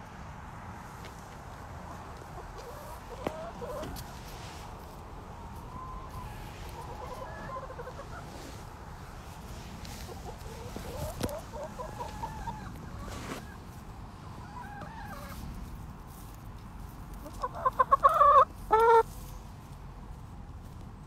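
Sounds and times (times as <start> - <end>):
hens clucking: 1.0 - 19.5.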